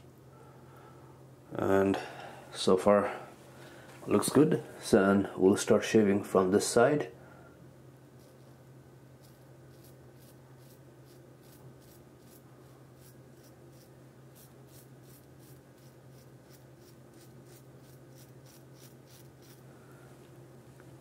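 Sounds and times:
razor scraping stubble: 0:09.2 - 0:19.6.

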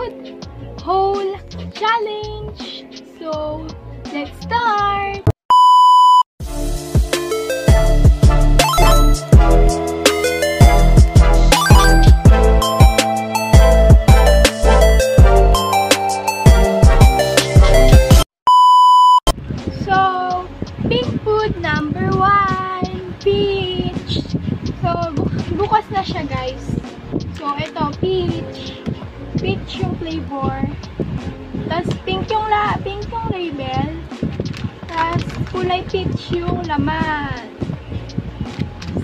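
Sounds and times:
high-pitched test-tone beep: 0:05.5 - 0:06.2, 0:08.6 - 0:09.2, 0:11.6 - 0:12.2, 0:18.5 - 0:19.3
pop music with singing: 0:06.9 - 0:18.2.

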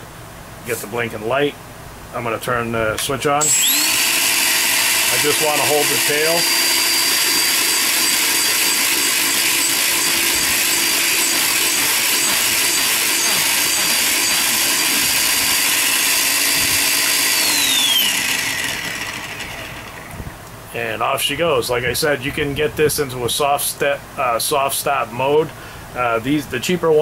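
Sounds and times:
electric motor and rotor whining: 0:03.4 - 0:20.4.

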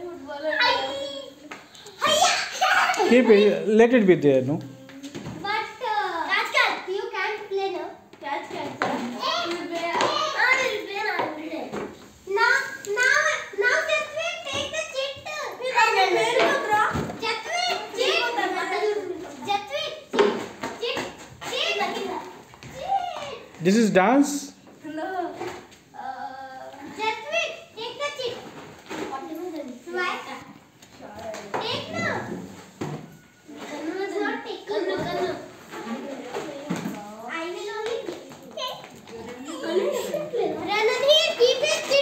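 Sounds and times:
children talking and calling out: 0:00.0 - 0:03.9, 0:04.6 - 0:23.8, 0:24.6 - 0:42.0.

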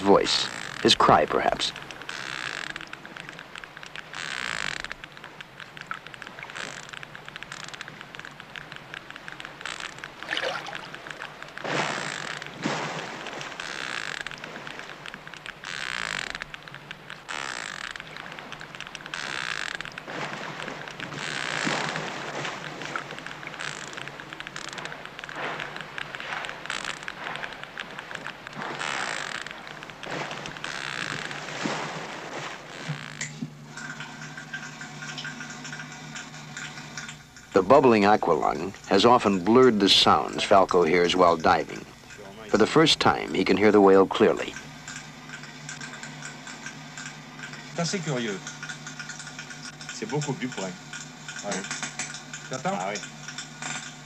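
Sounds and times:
whale rapid clicking underwater: 0:00.0 - 0:54.0.

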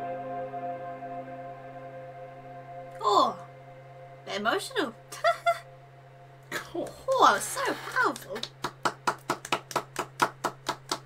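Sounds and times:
hands clapping: 0:08.1 - 0:11.0.

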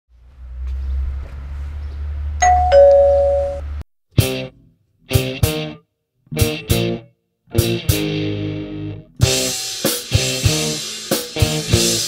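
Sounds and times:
two-tone doorbell chime: 0:02.4 - 0:03.7.

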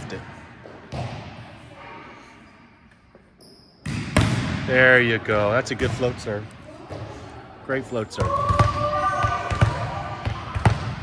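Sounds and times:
volleyball thud echoing: 0:00.9 - 0:01.4, 0:03.8 - 0:04.7.

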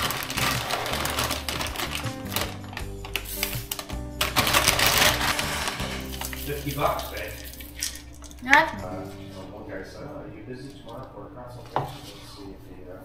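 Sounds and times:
foil snack bag crinkling: 0:00.0 - 0:08.4
background music: 0:00.0 - 0:13.0.

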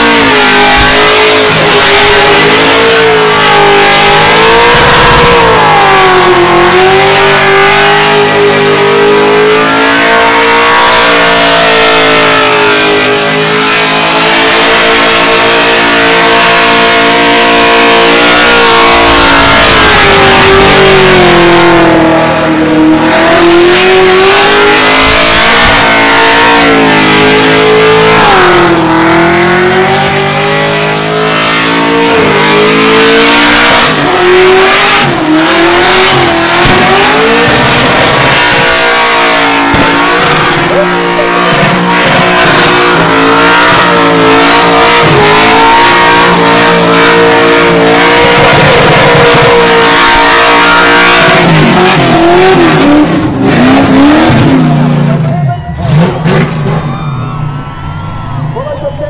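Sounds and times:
car engine at high revs: 0:00.0 - 0:57.4.

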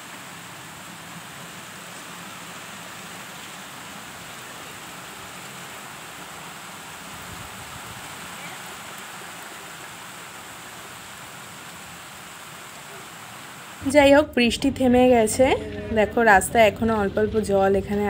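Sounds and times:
heavy rain: 0:00.0 - 0:18.0
tyres on a flooded road: 0:00.0 - 0:18.0.

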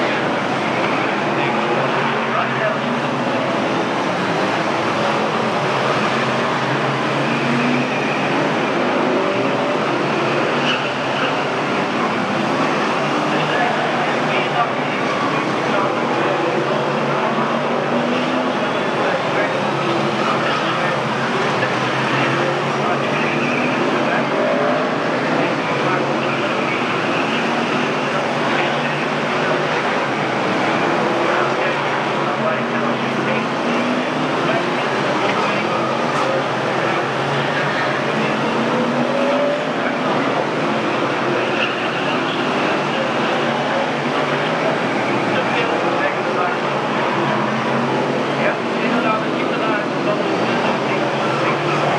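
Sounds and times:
race car engines running: 0:00.0 - 0:51.9.

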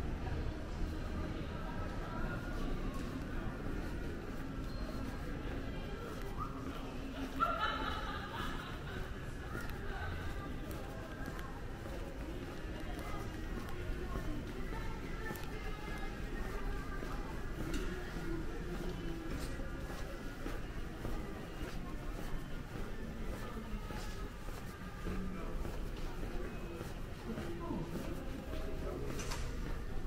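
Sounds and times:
footsteps: 0:01.8 - 0:30.0.

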